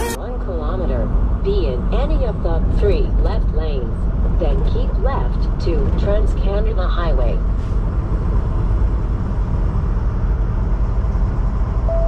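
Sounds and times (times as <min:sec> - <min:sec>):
truck engine and road rumble: 0:00.0 - 0:12.0.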